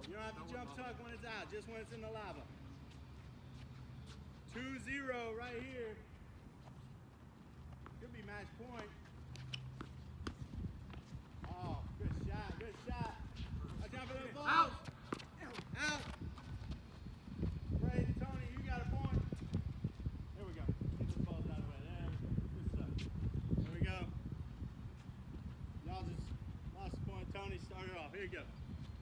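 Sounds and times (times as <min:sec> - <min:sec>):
players' voices: 0:04.5 - 0:06.1, 0:07.9 - 0:09.1, 0:11.4 - 0:16.5
running footsteps: 0:06.0 - 0:20.2.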